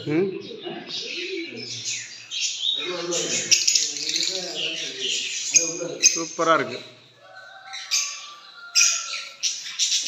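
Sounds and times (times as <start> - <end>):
lovebirds chirping and squawking: 0.0 - 10.0.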